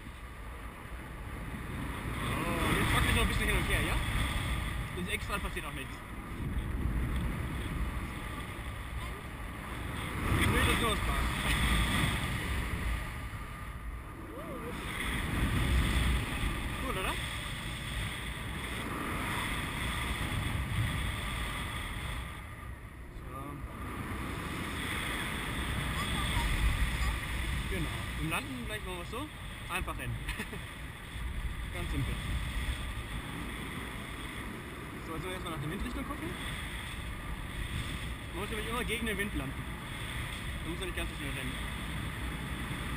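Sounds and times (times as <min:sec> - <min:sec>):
wind rushing over microphone: 0:00.0 - 0:42.9.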